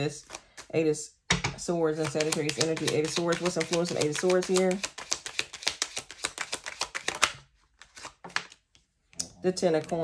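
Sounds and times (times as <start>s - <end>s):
cards shuffling: 0.2s - 0.7s, 1.9s - 8.9s.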